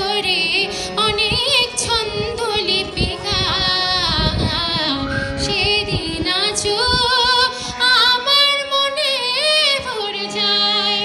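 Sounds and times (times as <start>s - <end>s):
harmonium: 0.0s - 11.0s
woman singing with vibrato: 0.0s - 11.0s.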